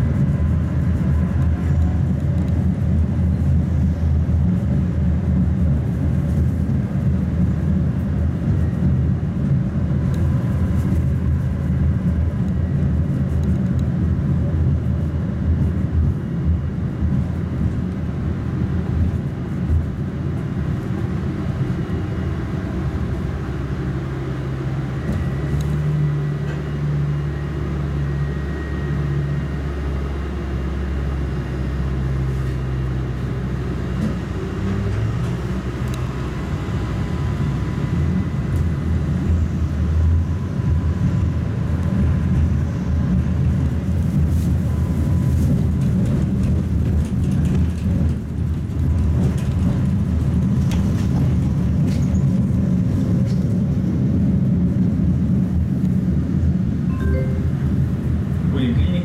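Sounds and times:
tram wheels rumbling on rails: 0.0s - 59.0s
low hum: 54.5s - 58.5s.

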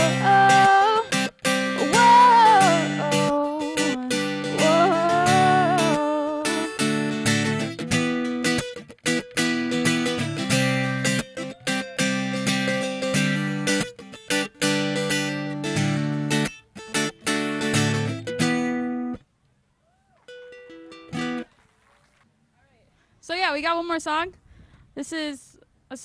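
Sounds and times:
acoustic guitar strumming: 0.0s - 19.3s, 20.2s - 21.6s.

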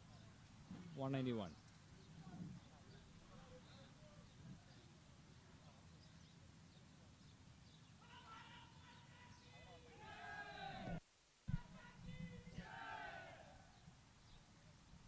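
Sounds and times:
distant voices calling out: 7.8s - 13.9s.

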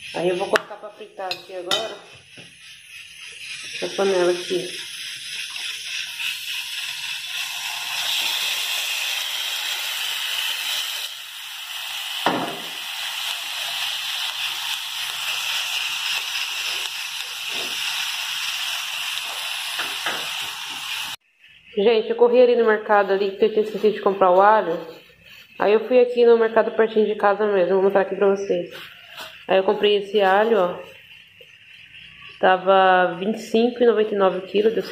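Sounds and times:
beef sizzling in hot oil: 0.0s - 34.9s.

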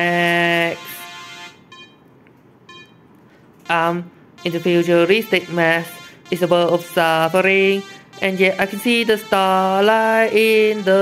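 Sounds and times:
short high electronic beeps: 2.7s - 3.0s
song note: 3.7s - 11.0s.

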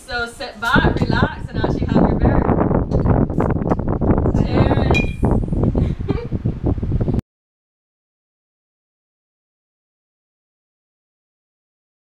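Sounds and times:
wind buffeting microphone: 0.0s - 7.2s
glass bottles clinking: 5.0s - 5.2s.

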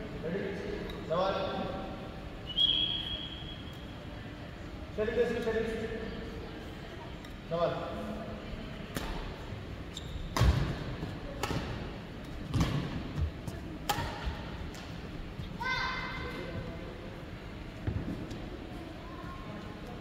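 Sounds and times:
racket hitting shuttlecock: 10.3s - 13.0s, 13.8s - 14.9s.

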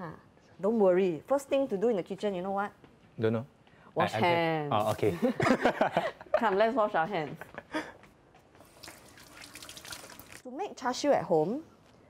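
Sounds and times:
hands washing: 8.6s - 10.4s.

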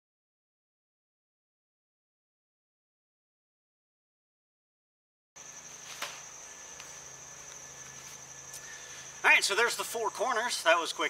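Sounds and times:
insects trilling: 5.4s - 11.0s.

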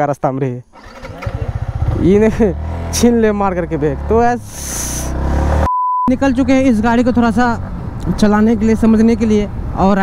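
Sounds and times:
motorcycle engine pulling away: 0.7s - 4.2s, 5.0s - 5.7s.

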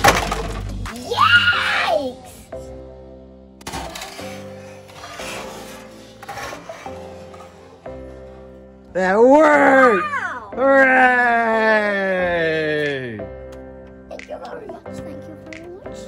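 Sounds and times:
background music with held notes: 0.0s - 16.0s
person shouting: 9.2s - 13.1s.

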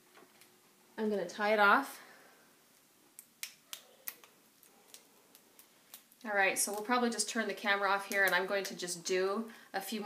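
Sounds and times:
hair band snapping: 3.2s - 6.8s.

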